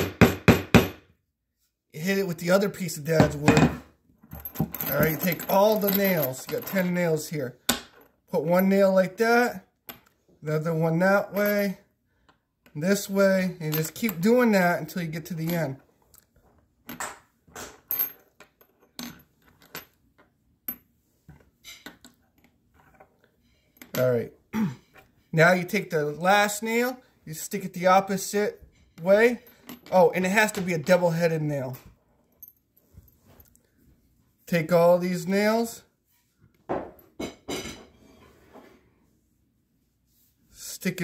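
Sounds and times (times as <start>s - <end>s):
metal nails clinking: 3.2s - 7.0s.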